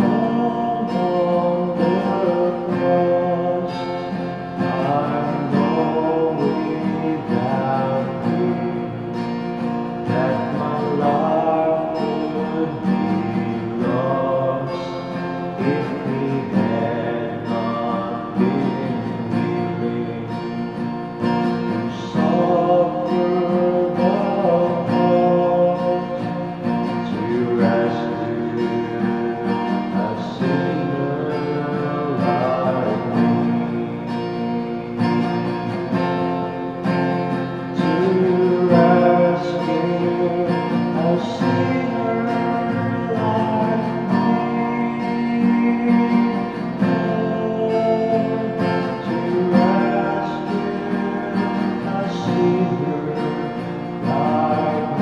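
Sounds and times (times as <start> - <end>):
man singing a hymn: 0.0 - 20.7, 21.5 - 36.8, 37.6 - 55.0
acoustic guitar strumming: 0.0 - 55.0.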